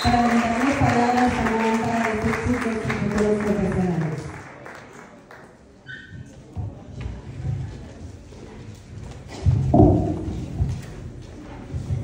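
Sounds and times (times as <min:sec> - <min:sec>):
footsteps on hollow wooden stage: 0:06.2 - 0:12.0
loud microphone thump: 0:09.4 - 0:10.7.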